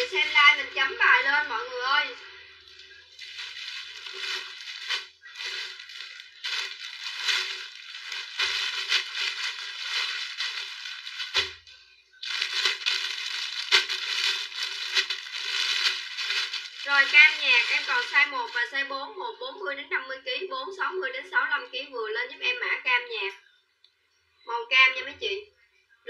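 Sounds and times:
plastic bags and clothes rustling: 0.0s - 18.9s.

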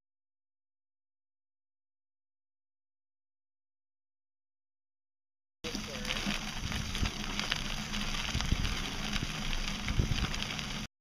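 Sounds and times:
bicycle tyres rolling on gravel: 5.6s - 10.9s
grit clicks and knocks: 5.7s - 10.9s
wind noise: 5.8s - 10.9s.

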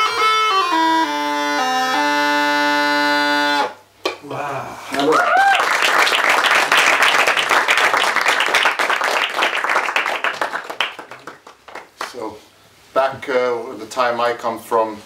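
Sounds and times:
bagpipes playing: 0.0s - 3.7s
audience cheering: 4.9s - 11.4s
audience applauding: 4.9s - 12.2s.

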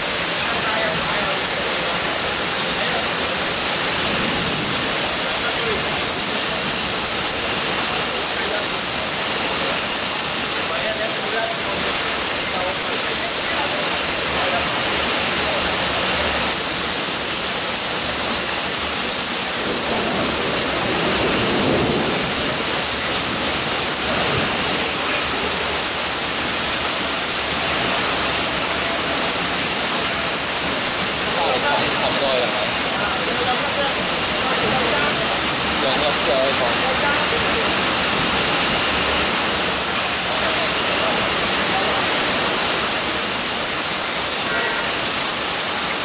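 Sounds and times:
faint voices: 0.0s - 16.6s, 19.4s - 46.0s
foundry equipment roaring: 0.0s - 46.0s.

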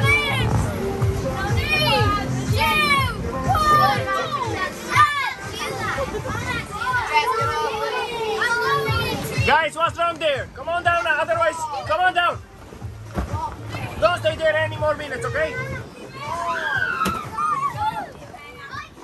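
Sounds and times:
children squealing and shouting: 0.0s - 0.6s, 1.4s - 9.5s, 15.5s - 19.0s
background music: 0.0s - 19.0s.

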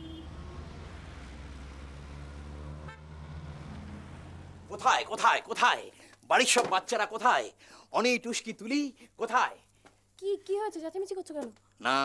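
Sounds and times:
car horn toot: 0.0s - 0.8s, 2.7s - 3.3s
traffic engine rumble: 0.0s - 6.9s.

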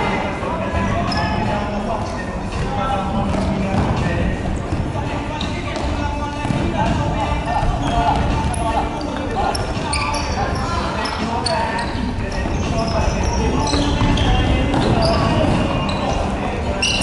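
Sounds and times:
sneaker squeaks on wooden court: 1.0s - 1.7s, 2.6s - 17.0s
ball kicked and bouncing: 2.6s - 4.9s.

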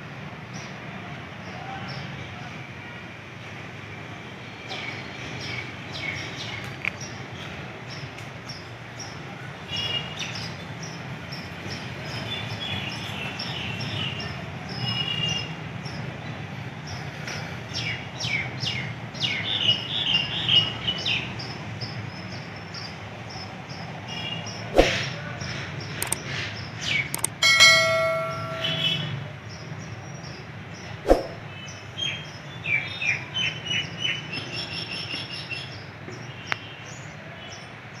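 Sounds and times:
short ringing tone: 27.2s - 29.2s.

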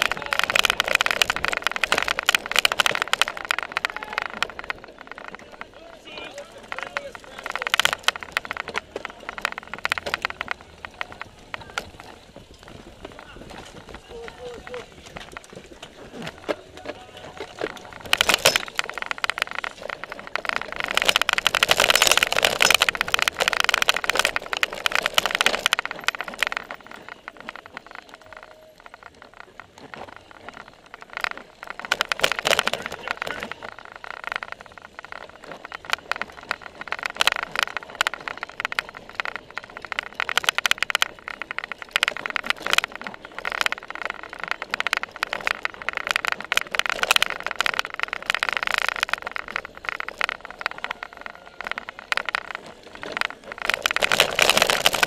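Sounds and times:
bike rattling over bumps: 0.0s - 55.0s
tyre noise: 0.0s - 55.0s
wind noise: 0.0s - 55.0s.

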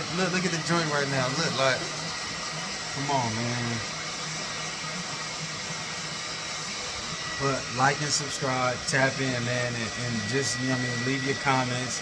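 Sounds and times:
hair dryer blowing air: 0.0s - 12.0s.

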